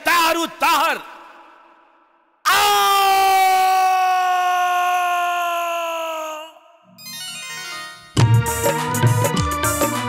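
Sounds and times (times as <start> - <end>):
man screaming in pain: 2.4 - 6.8.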